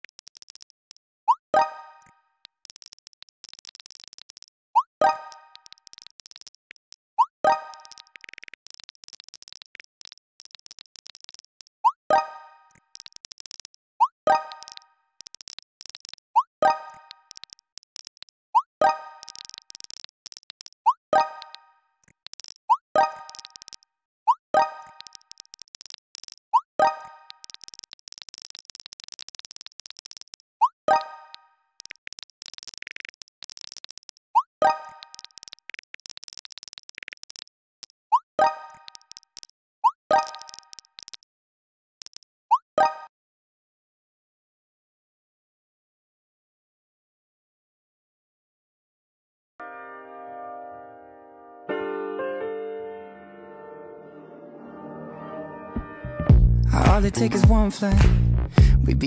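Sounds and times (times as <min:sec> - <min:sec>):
faint keyboard tapping: 0:00.0 - 0:01.1, 0:02.0 - 0:11.9, 0:12.7 - 0:18.4, 0:19.2 - 0:23.8, 0:24.6 - 0:31.0, 0:31.8 - 0:39.5, 0:40.1 - 0:41.2
message pop sound effect: 0:01.3 - 0:09.7, 0:10.4 - 0:37.4, 0:38.1 - 0:41.2, 0:56.3 - 0:59.0.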